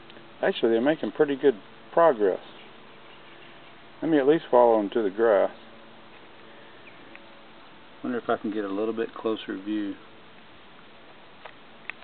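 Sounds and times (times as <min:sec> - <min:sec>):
outdoor background hiss: 0:00.0 - 0:12.0
faint chirp: 0:02.4 - 0:03.9, 0:06.4 - 0:07.5.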